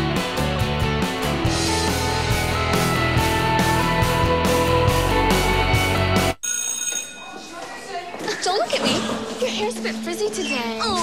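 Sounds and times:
rock bumper music: 0:00.0 - 0:06.4
electric school bell ringing: 0:06.4 - 0:07.6
hallway background noise: 0:06.5 - 0:11.0.

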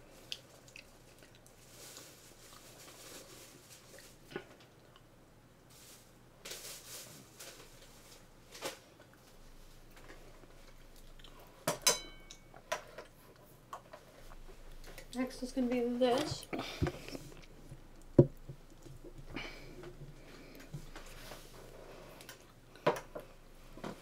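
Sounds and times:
glass and tableware clinking: 0:11.8 - 0:12.6.

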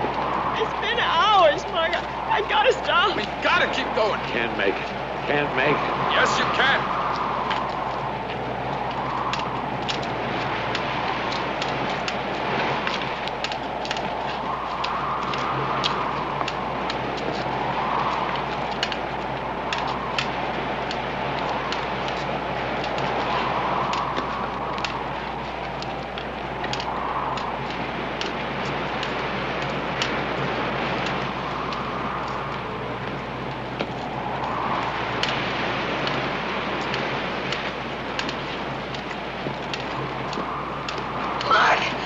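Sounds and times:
twigs crackling and snapping: 0:00.0 - 0:42.0
wind gusting through trees: 0:00.0 - 0:42.0.

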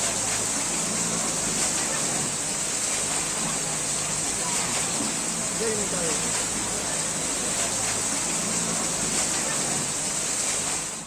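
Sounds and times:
floodwater rushing: 0:00.0 - 0:11.0.

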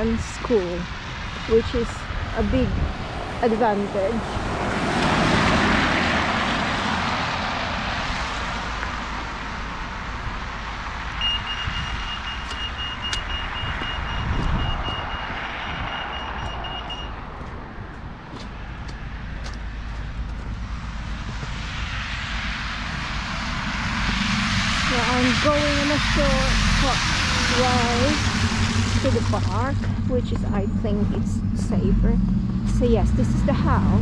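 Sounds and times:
crossing signal beeping: 0:11.2 - 0:17.3, 0:25.8 - 0:34.0
tyres hissing on wet road: 0:21.9 - 0:29.8.

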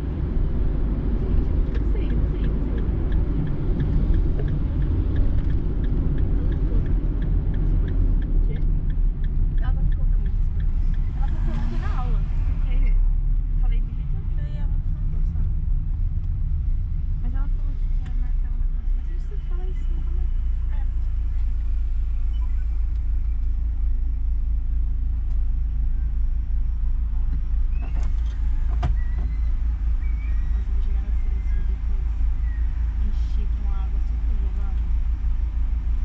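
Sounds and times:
car engine and road noise: 0:00.0 - 0:36.0.

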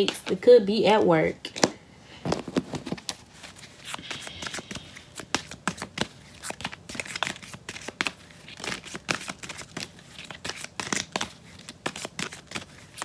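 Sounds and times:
cards being shuffled: 0:02.2 - 0:13.0.

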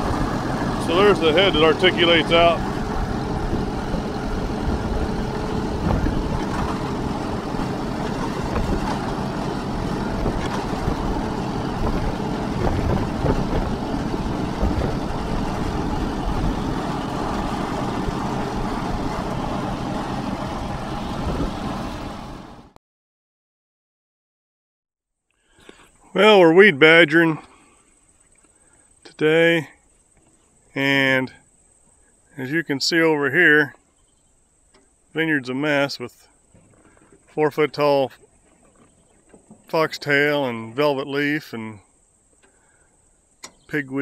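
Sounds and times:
tractor engine running: 0:00.0 - 0:22.8.

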